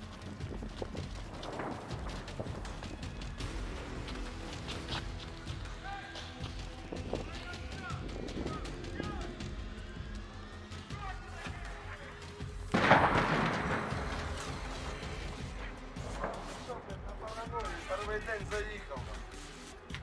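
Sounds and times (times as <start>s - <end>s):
footsteps on wet pavement: 0.0s - 9.5s, 12.8s - 20.0s
background music: 0.0s - 20.0s.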